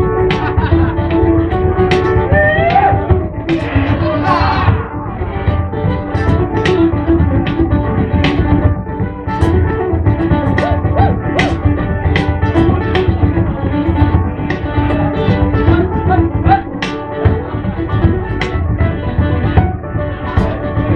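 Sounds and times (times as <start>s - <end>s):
frame drum beat: 0.0s - 20.9s
plucked string instruments: 0.0s - 20.9s
strummed guitars: 0.0s - 20.9s.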